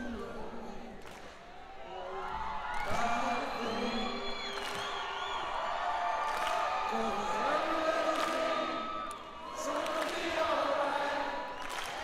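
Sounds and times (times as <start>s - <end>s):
audience cheering and whistling: 1.5s - 12.0s.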